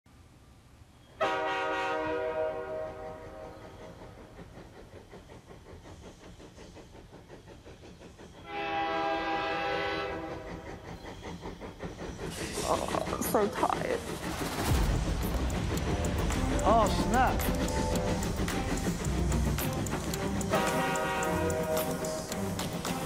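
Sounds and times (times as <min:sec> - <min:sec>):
train horn blasts: 0:01.2 - 0:03.5, 0:08.5 - 0:10.4, 0:20.4 - 0:22.2
train clattering: 0:01.2 - 0:23.0.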